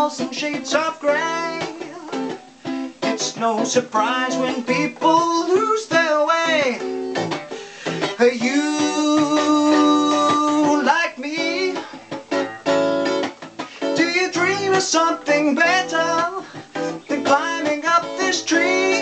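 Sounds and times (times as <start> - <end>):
man singing: 0.0 - 2.4, 3.0 - 12.1, 13.6 - 19.0
electric guitar strumming: 0.0 - 19.0.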